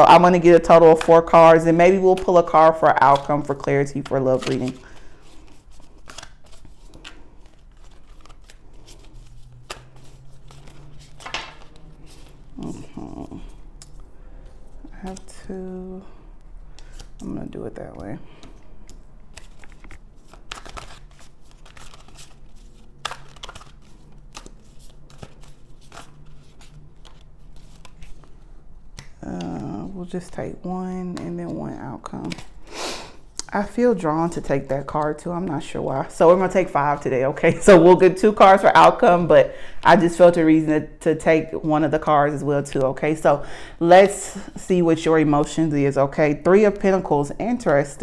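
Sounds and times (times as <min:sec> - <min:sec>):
cards being shuffled: 0:00.0 - 0:15.6, 0:16.7 - 0:17.4, 0:18.0 - 0:30.4, 0:31.0 - 0:32.6
crisp card snaps: 0:11.2 - 0:11.6.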